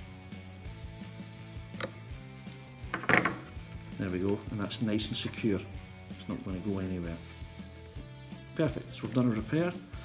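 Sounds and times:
background music: 0:00.0 - 0:10.0
pliers clicking on metal nut: 0:01.7 - 0:02.8.

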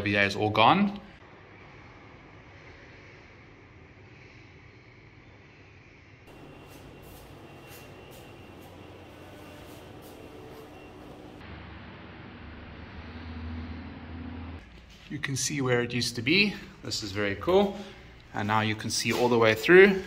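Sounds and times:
low hum: 0:01.2 - 0:14.9.

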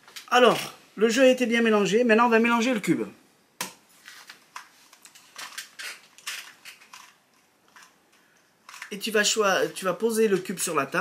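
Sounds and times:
puzzle cube clicking: 0:08.6 - 0:09.0.

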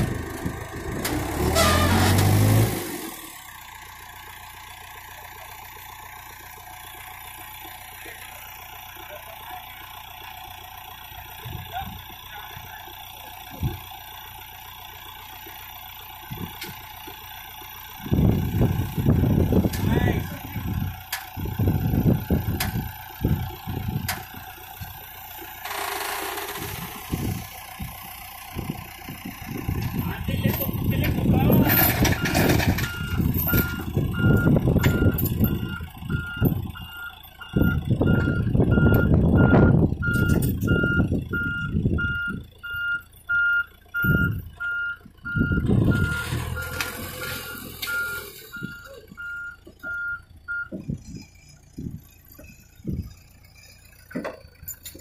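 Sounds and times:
diesel engine under load: 0:00.0 - 0:55.0
reverse alarm beeping: 0:32.2 - 0:53.9.

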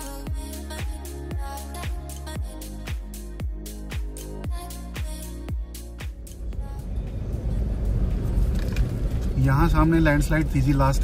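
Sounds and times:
background music with a beat: 0:00.0 - 0:08.5
car engine and road rumble: 0:04.5 - 0:11.0.

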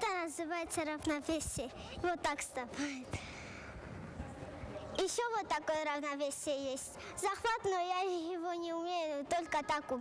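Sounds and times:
hollow sports hall room noise: 0:00.0 - 0:10.0.

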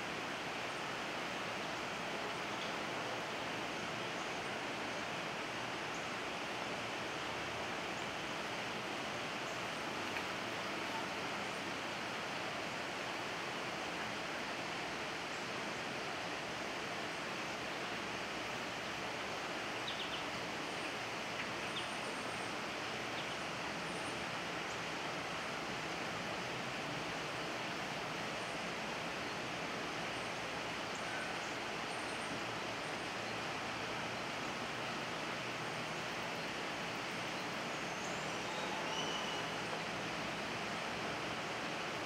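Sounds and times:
outdoor background hiss: 0:00.0 - 0:42.0
faint high chirps: 0:37.9 - 0:39.6.

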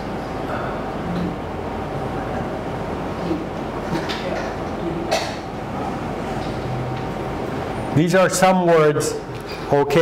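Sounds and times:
faint hum: 0:00.0 - 0:10.0
room noise rumble: 0:00.0 - 0:10.0.

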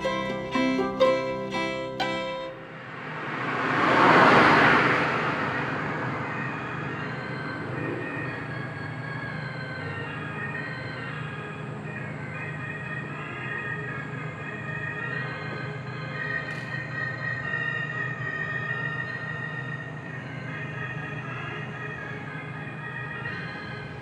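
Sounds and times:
ambient instrumental music: 0:00.0 - 0:03.0.

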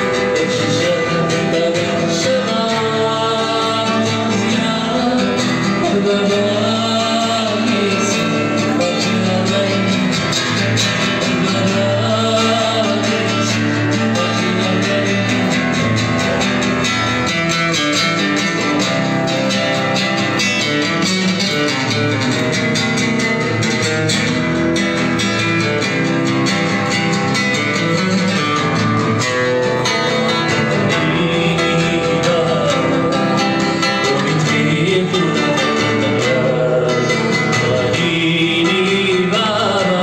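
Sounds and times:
man singing: 0:00.0 - 0:16.6, 0:25.6 - 0:40.0
amplified acoustic guitar: 0:00.0 - 0:40.0.

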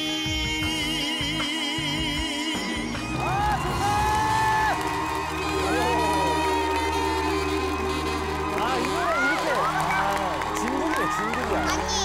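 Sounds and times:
saxophone held notes: 0:00.0 - 0:11.9
band playing: 0:00.0 - 0:12.0
audience cheering: 0:02.9 - 0:12.0.

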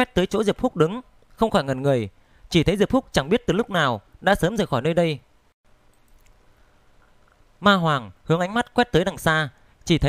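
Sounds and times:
man narrating: 0:00.0 - 0:05.3, 0:07.6 - 0:10.0
faint room hum: 0:00.0 - 0:10.0.

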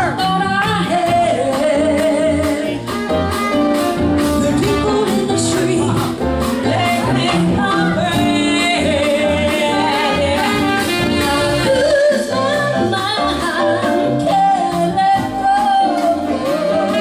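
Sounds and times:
women singing: 0:00.0 - 0:02.8, 0:04.3 - 0:17.0
live band playing: 0:00.0 - 0:17.0.

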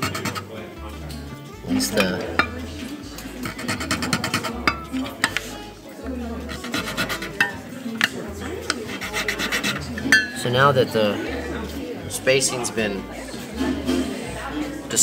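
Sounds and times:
file rasping: 0:00.0 - 0:00.5, 0:03.4 - 0:04.6, 0:06.5 - 0:07.6, 0:08.6 - 0:10.1.

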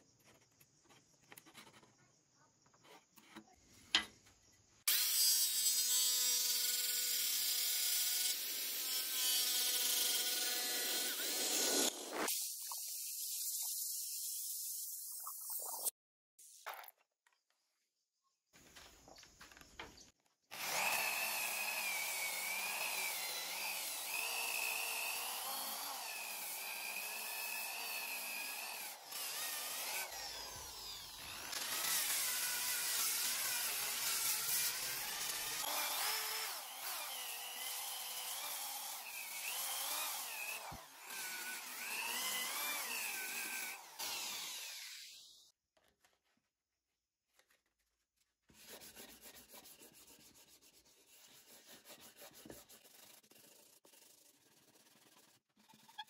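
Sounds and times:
sanding disc rasping on wood: 0:48.6 - 0:56.0.

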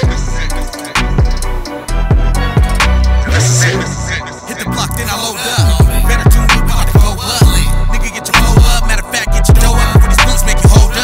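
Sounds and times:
hip hop music: 0:00.0 - 0:11.0.

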